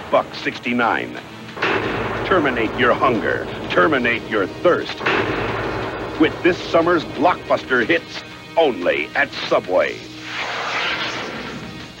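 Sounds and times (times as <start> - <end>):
commercial closing music: 0.0 - 12.0
rushing sound effect: 1.6 - 8.2, 10.2 - 12.0
held low tones: 1.6 - 8.8.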